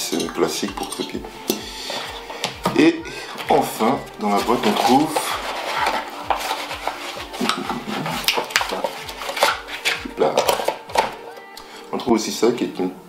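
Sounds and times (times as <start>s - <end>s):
hands rummaging in cardboard box: 3.4s - 11.2s.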